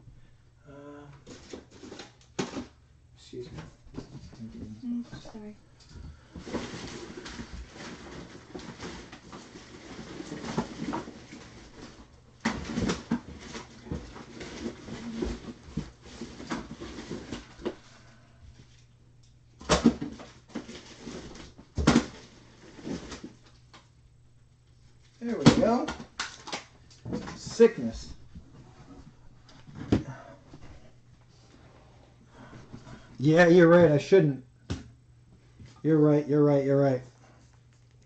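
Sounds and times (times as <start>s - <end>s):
rummaging and handling noise: 6.1s - 18.8s, 19.6s - 23.6s.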